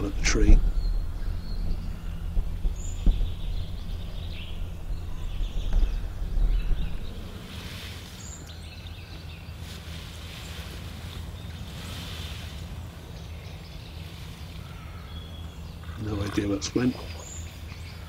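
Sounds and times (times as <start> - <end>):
faint bird chirps: 0.0 - 18.0
low hum and rumble: 0.0 - 18.0.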